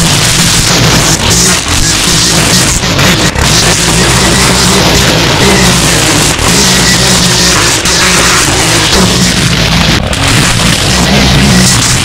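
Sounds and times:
string trimmer engine cutting grass: 0.0s - 12.0s.

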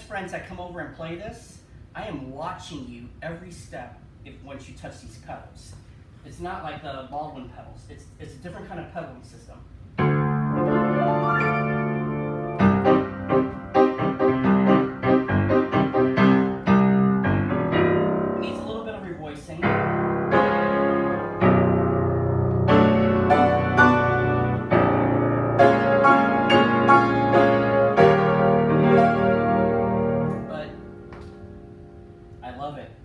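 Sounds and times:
grand piano chords and runs: 9.9s - 32.6s.

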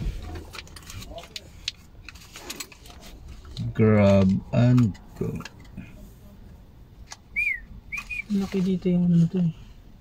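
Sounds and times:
faint clicks and rattles: 0.1s - 5.9s.

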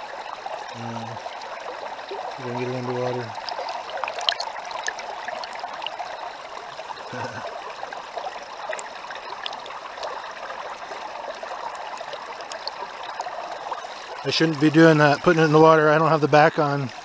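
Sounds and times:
underwater rush of water: 0.0s - 17.0s.

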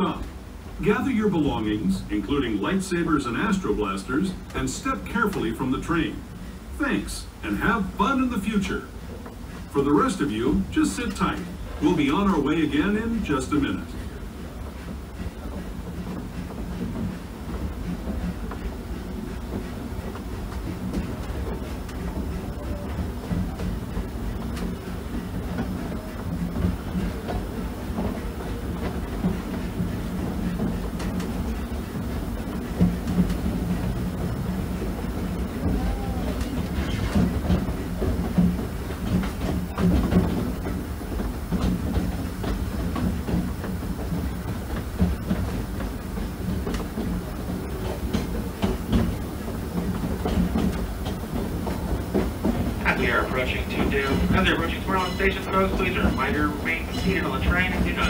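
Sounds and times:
train rumbling on track: 0.0s - 58.0s
wheels knocking and clacking: 9.0s - 58.0s.

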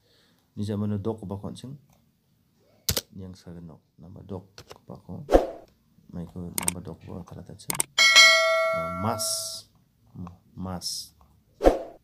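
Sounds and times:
notification bell chime: 8.0s - 9.6s.

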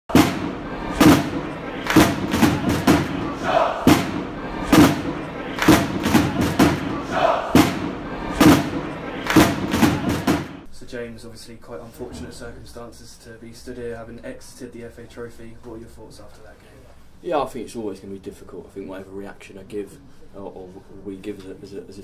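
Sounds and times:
crowd noise: 0.1s - 10.7s
title music with heavy drum hits: 0.1s - 10.7s
people shouting: 0.2s - 10.6s.

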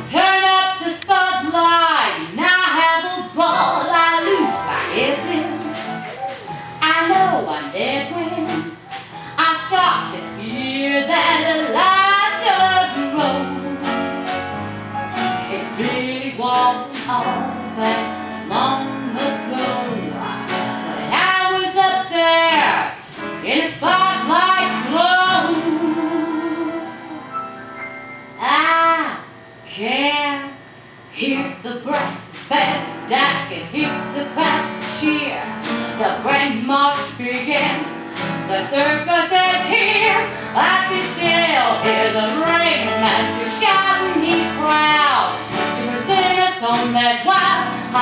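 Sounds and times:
woman singing with vibrato: 0.0s - 8.8s, 9.4s - 14.2s, 15.5s - 27.3s, 28.4s - 30.6s, 31.2s - 35.4s, 36.0s - 48.0s
instrumental accompaniment with beat: 3.6s - 16.2s.

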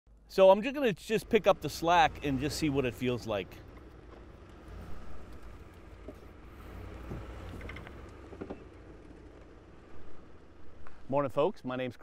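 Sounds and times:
engine rumble: 0.1s - 12.0s
faint knocks and clicks: 5.2s - 9.6s.

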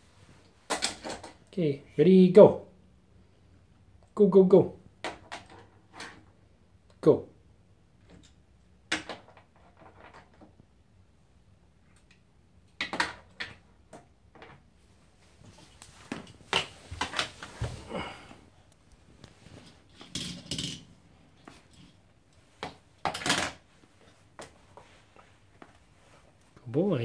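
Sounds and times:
toy cars clattering: 0.7s - 1.5s, 19.9s - 20.9s, 23.0s - 23.6s.

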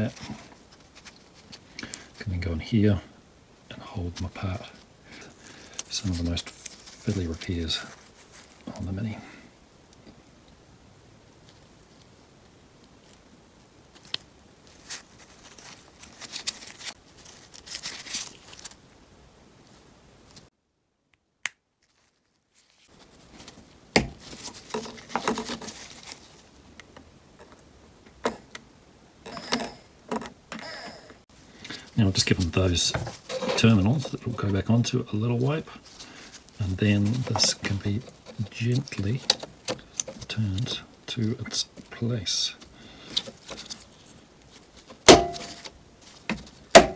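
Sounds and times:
gloved hands handling small motor: 29.3s - 42.0s.

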